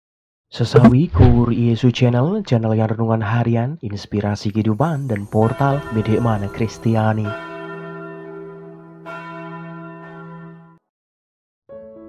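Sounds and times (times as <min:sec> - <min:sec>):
low bell chime: 0:04.8 - 0:10.8.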